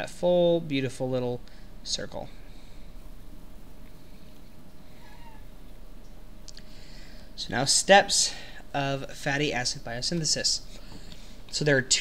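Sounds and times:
faint steady hum: 0:00.0 - 0:12.0
high-pitched squeak-like call: 0:05.0 - 0:05.5.

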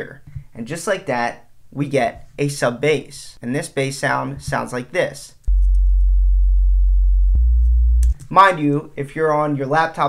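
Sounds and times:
sine-wave sub bass notes: 0:05.5 - 0:08.2.

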